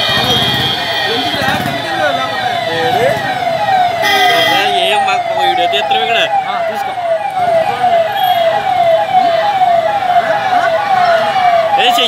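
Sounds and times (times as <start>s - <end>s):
street crowd noise: 0.0s - 12.0s
vehicle siren yelping: 0.0s - 12.0s.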